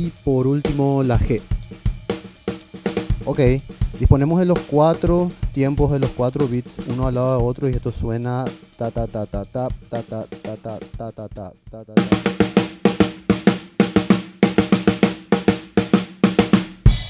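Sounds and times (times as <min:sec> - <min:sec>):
drum kit played with sticks: 0:00.0 - 0:17.0
person vocalizing a rhythm: 0:03.2 - 0:12.3.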